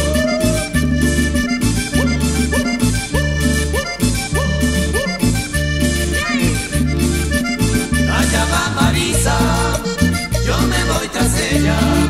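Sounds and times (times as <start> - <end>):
accordion: 0.0 - 12.0
bass: 0.0 - 12.0
percussion dance beat: 0.0 - 12.0.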